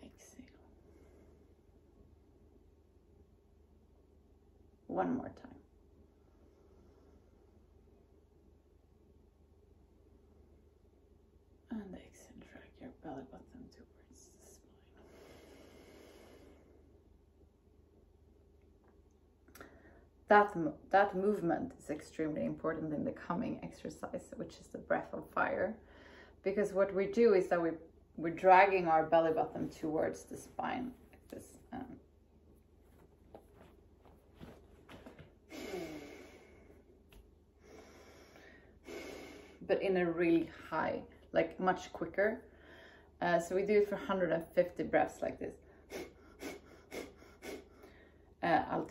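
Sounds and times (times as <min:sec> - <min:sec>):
woman whispering: 0:00.0 - 0:00.7, 0:11.7 - 0:15.0
long exhale: 0:15.0 - 0:16.8, 0:37.6 - 0:39.6
woman breathing through nose: 0:15.0 - 0:16.8, 0:37.6 - 0:39.6.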